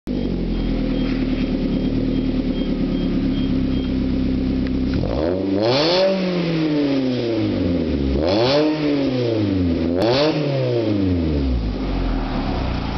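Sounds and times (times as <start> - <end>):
car engine idling and revving: 0.1 - 12.9.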